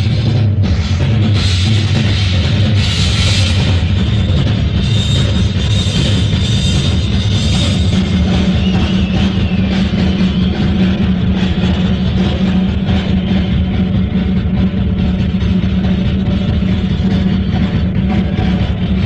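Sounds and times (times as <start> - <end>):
drum kit rapid strokes: 0.0 - 19.0
loud dense low rumble: 0.0 - 19.0.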